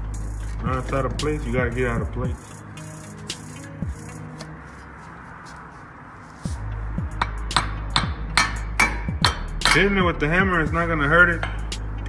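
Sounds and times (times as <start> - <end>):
background music: 0.0 - 12.0
hammer striking metal shaft: 7.1 - 10.1, 11.3 - 11.8.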